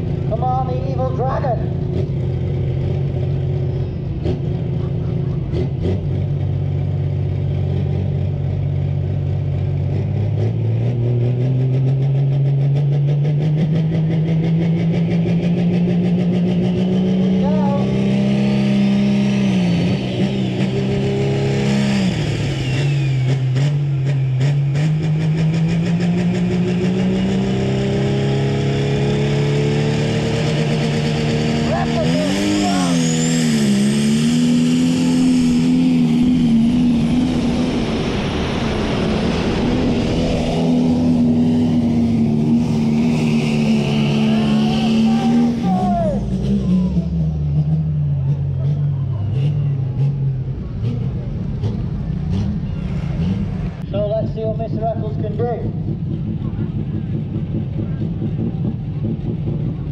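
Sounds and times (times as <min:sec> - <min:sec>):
tractor diesel engine revving: 0:00.0 - 0:59.9.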